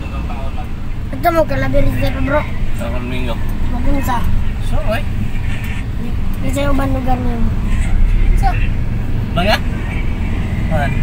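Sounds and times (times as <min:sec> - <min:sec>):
people talking: 0:00.0 - 0:08.7
vehicle engine and road noise: 0:00.0 - 0:11.0.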